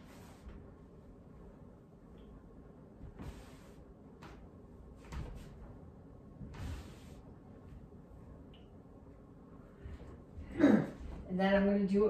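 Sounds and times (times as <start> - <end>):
swish of body movement: 6.4 - 7.5.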